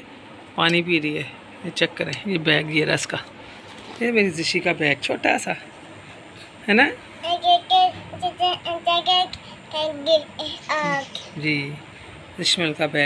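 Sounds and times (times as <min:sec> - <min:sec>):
young child singing: 0:07.2 - 0:11.3.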